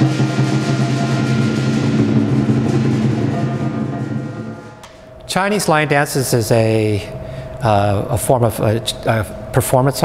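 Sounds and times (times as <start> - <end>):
drum: 0.0 - 5.1
gong ringing: 0.0 - 8.0
cymbals ringing: 0.0 - 10.0.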